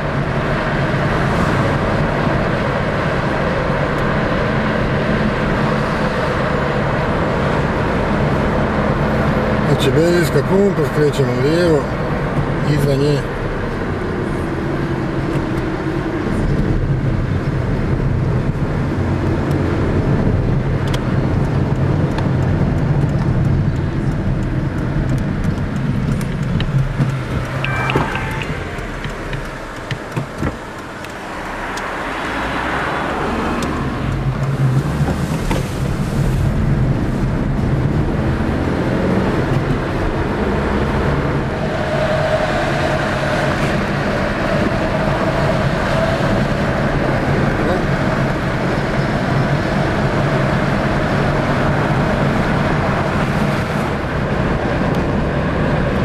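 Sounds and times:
car engine: 0.0 - 56.0.

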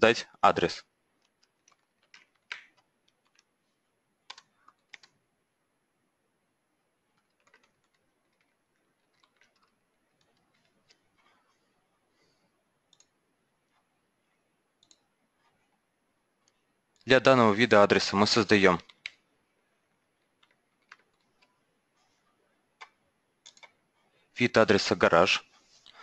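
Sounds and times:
faint keyboard typing: 1.0 - 5.3, 7.0 - 17.3, 18.2 - 24.4.

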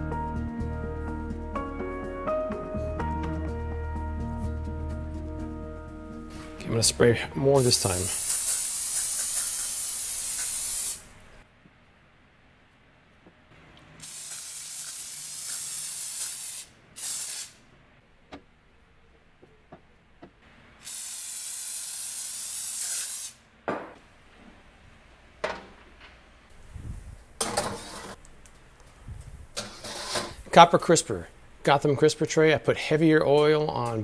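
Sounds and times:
oil spray hissing from can: 7.6 - 11.1, 14.0 - 17.6, 20.8 - 23.4.

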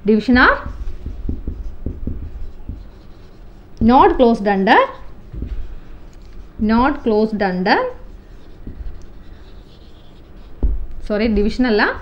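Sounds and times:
marker pen writing on whiteboard: 0.2 - 12.0.

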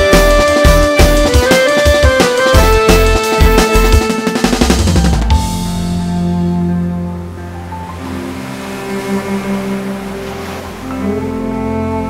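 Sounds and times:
soft instrumental music: 0.0 - 12.0
sea waves on shore: 5.7 - 12.0.

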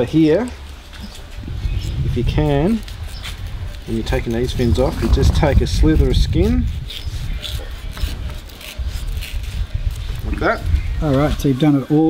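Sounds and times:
low rumble: 3.9 - 6.4
knife slicing through fish skin: 6.7 - 10.2.

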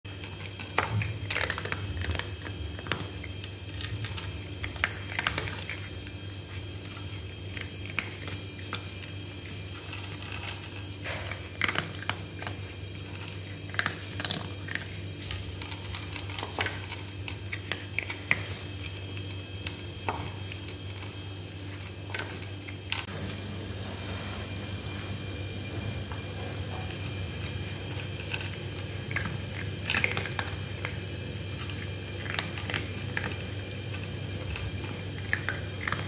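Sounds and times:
cats crunching dry kibble: 0.1 - 23.4, 24.7 - 36.0
low hum: 19.2 - 36.0.

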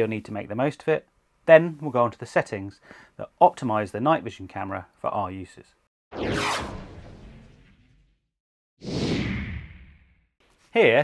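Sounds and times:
whoosh sound effects: 6.1 - 8.2.

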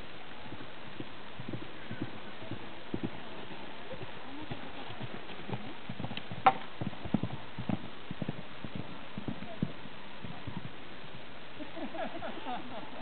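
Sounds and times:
horse hooves thudding on grass: 0.0 - 11.4
steady hiss: 0.0 - 13.0.

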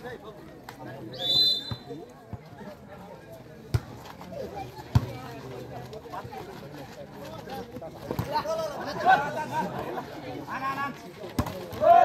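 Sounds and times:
people calling out and chattering: 0.0 - 12.0.

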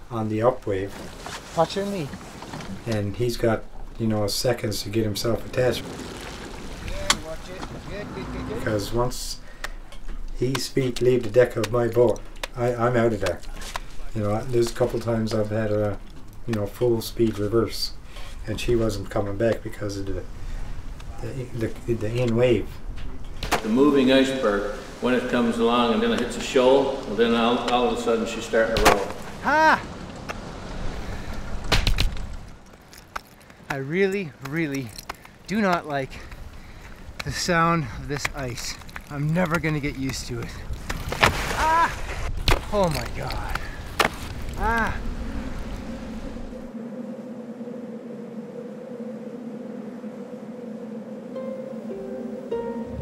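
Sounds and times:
boat engine rumble: 0.0 - 10.4, 13.5 - 41.2, 42.7 - 53.0
water noise: 3.6 - 9.8, 20.2 - 41.9, 42.7 - 53.0
motorboat motor: 5.5 - 8.6
wind on microphone: 43.2 - 53.0.

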